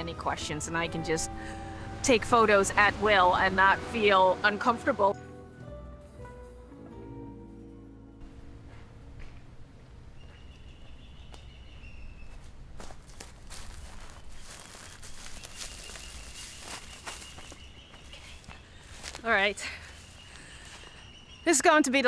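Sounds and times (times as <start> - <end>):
low outdoor rumble: 0.0 - 5.1, 7.9 - 21.0
footsteps on twigs and sand: 12.2 - 21.4.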